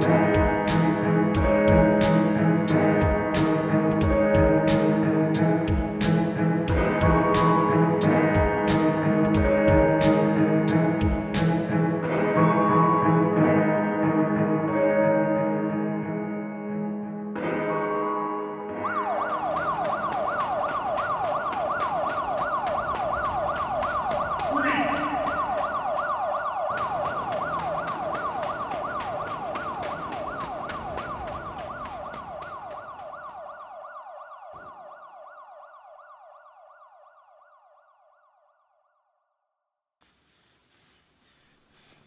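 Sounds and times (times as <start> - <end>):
music: 0.0 - 20.9
siren yelping: 18.8 - 38.6.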